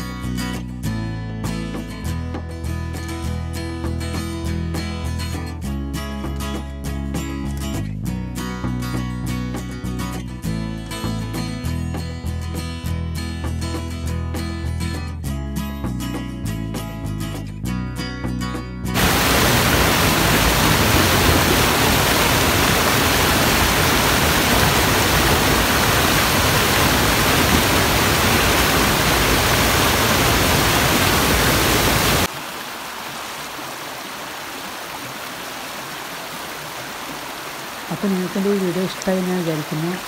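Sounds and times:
music: 0.0s - 19.0s
stream water over stones: 19.0s - 40.0s
waterfall rushing over rocks: 19.0s - 40.0s.

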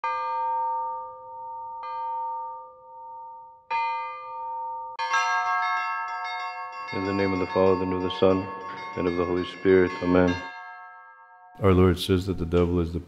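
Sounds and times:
church bell ringing: 0.0s - 11.6s
smaller bells chiming: 0.0s - 12.6s.

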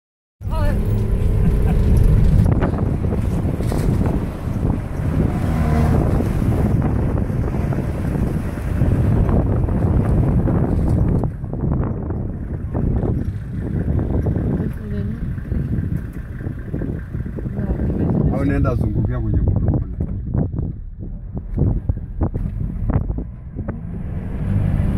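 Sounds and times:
vehicle engine rumbling: 0.4s - 24.9s
wind noise on microphone: 0.5s - 24.9s.

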